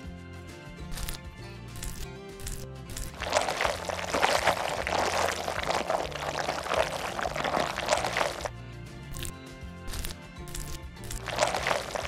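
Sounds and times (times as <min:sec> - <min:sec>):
background music: 0:00.0 - 0:12.0
frosting squishing from piping bag: 0:01.8 - 0:08.5, 0:09.1 - 0:09.3, 0:09.9 - 0:12.0.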